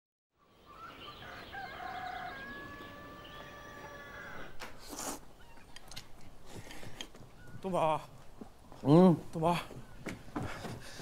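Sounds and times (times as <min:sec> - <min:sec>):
rooster crowing: 0:00.8 - 0:04.6.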